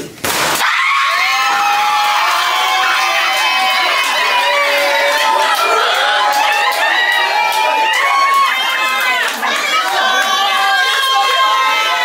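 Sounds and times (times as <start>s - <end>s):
people screaming and cheering: 0.6s - 12.0s.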